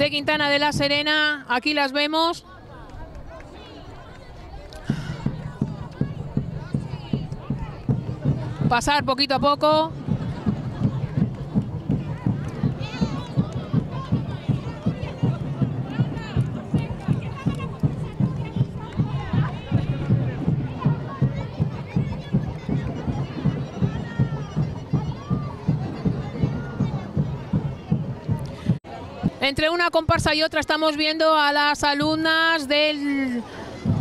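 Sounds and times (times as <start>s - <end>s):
crowd chatter: 0.0s - 34.0s
carnival parade music: 4.8s - 29.8s, 33.4s - 34.0s.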